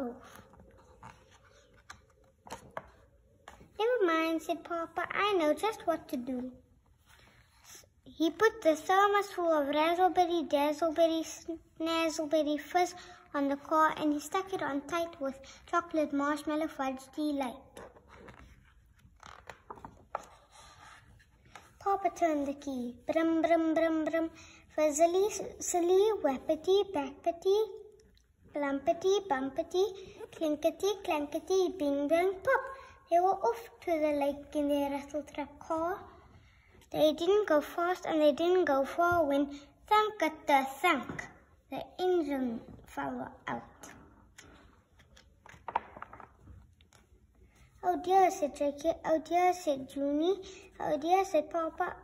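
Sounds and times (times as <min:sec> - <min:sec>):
book pages turning: 0:00.2 - 0:03.8, 0:17.7 - 0:21.8, 0:44.2 - 0:47.3.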